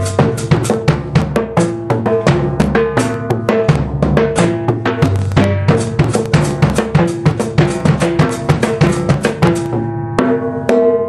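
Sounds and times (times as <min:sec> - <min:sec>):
bass drum: 0:00.0 - 0:11.0
rapid tom drum strokes: 0:00.0 - 0:11.0.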